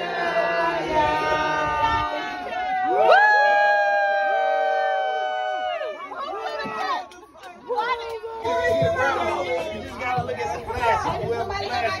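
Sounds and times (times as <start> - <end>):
group singing held note: 0.0 - 2.8.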